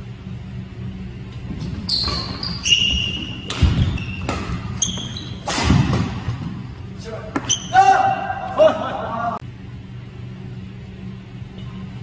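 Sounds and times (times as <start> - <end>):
shoes squeaking on wooden floor: 1.3 - 6.7, 7.3 - 7.9
racket hitting shuttlecock: 1.6 - 8.5.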